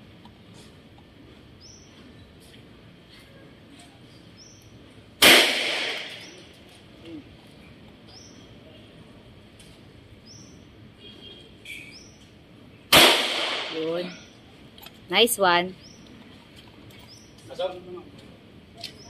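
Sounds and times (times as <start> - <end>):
handgun shots with echo: 5.2 - 6.4, 12.9 - 13.8.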